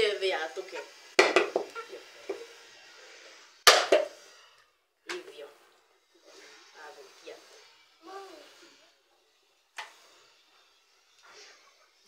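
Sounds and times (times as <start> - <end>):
knocks on coconut shell: 1.2 - 1.7, 3.7 - 4.1.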